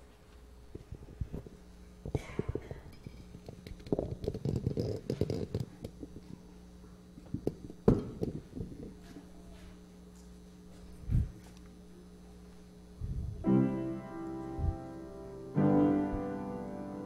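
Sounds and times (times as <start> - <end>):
microphone handling noise: 0.7 - 6.2, 11.0 - 11.5, 13.0 - 13.4, 14.5 - 14.8.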